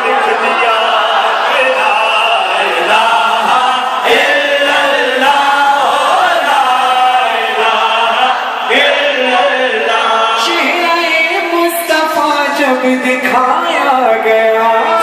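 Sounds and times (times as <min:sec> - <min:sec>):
crowd of men chanting: 0:00.0 - 0:11.5.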